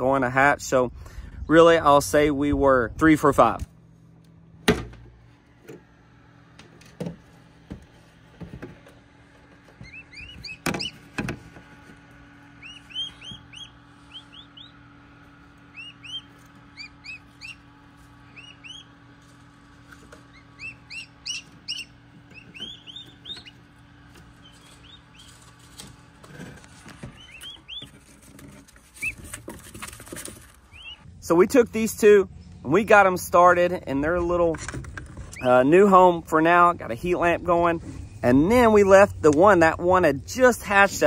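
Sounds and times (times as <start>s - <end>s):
low steady hum: 0.0s - 41.0s
turkey poults peeping: 9.6s - 31.1s
handling noises: 21.4s - 30.9s.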